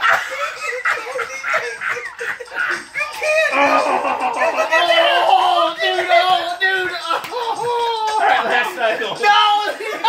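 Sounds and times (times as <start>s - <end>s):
men laughing hard: 0.0s - 10.0s.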